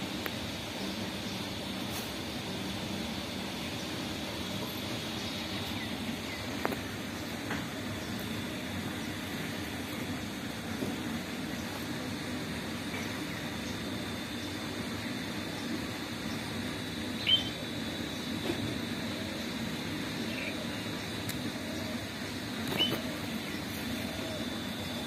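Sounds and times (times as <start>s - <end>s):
low outdoor background rumble: 0.0s - 25.0s
thin steady high tone: 13.2s - 25.0s.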